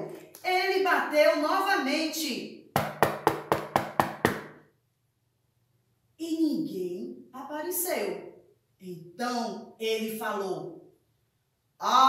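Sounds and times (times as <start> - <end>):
knocking on hard surface: 2.8 - 4.6.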